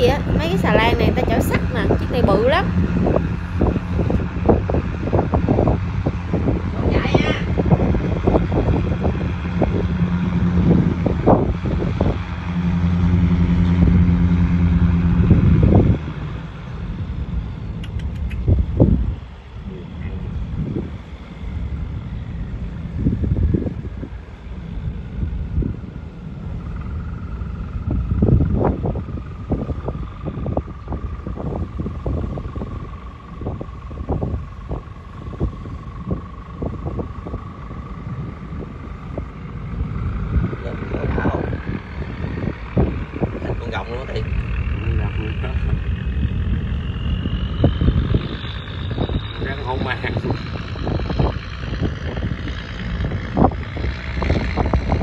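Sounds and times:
diesel engines humming: 0:00.0 - 0:55.0
faint engine whine: 0:00.0 - 0:55.0
wind buffeting microphone: 0:00.0 - 0:55.0.

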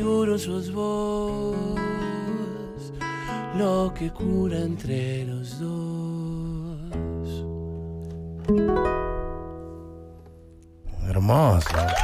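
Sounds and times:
classical guitar chords: 0:00.0 - 0:10.9.

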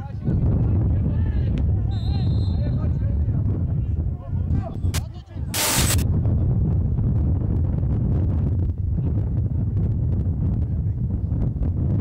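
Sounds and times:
wind buffeting microphone: 0:00.0 - 0:12.0
loud burst of noise: 0:05.6 - 0:06.0.

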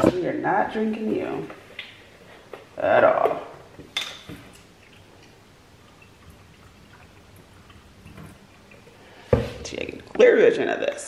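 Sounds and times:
liquid pouring into a sink: 0:04.3 - 0:09.8.

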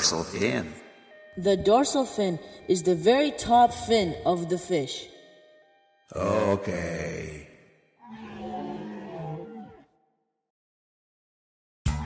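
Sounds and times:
dinosaur roar: 0:08.0 - 0:09.9.

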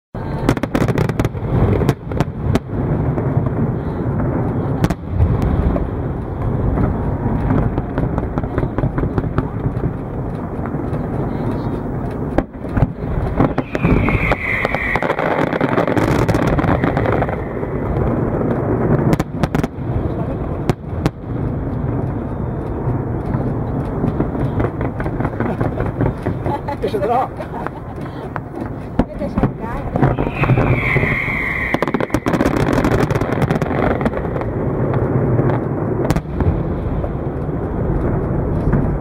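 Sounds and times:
fireworks bangs and crackles: 0:00.2 - 0:39.0.

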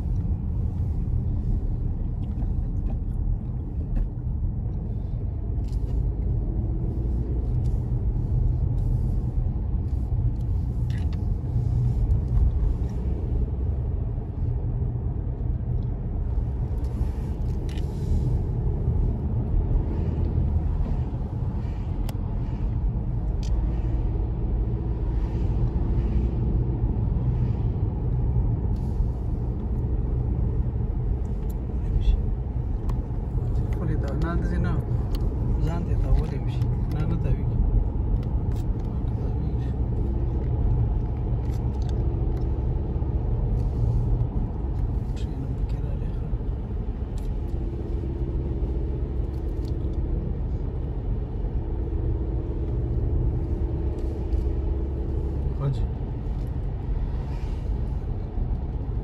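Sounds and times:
car cabin road rumble: 0:00.0 - 0:59.0
tyres on wet road: 0:16.3 - 0:58.9.

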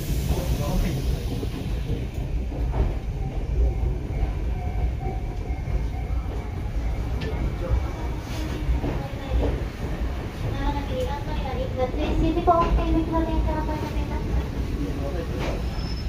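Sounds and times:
train wheels rumbling: 0:00.0 - 0:16.0.

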